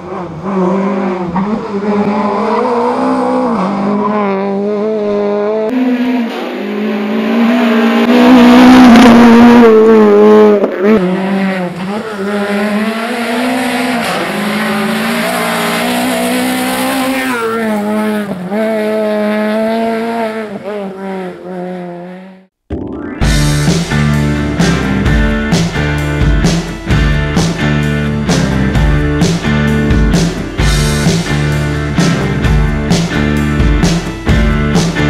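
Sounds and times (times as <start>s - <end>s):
rally car engine revving: 0.0s - 22.5s, 23.4s - 35.0s.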